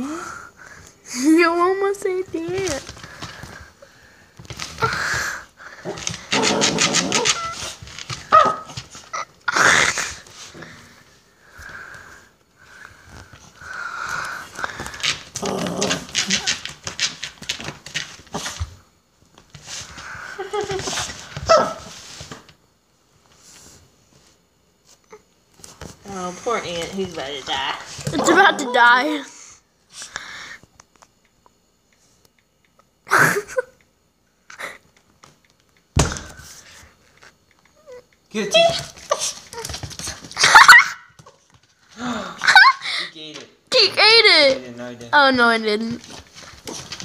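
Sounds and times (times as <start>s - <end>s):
dog whining: 6.3s - 10.2s, 40.4s - 41.1s
small dog whimpering: 7.2s - 7.7s.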